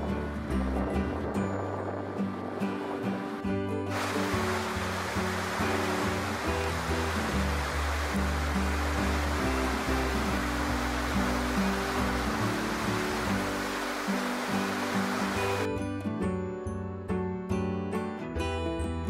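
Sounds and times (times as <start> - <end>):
whitewater rushing: 3.9 - 15.7.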